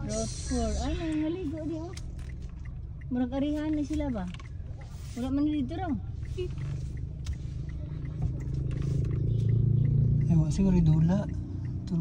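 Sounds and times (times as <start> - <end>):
car engine drone inside cabin: 0.0 - 12.0.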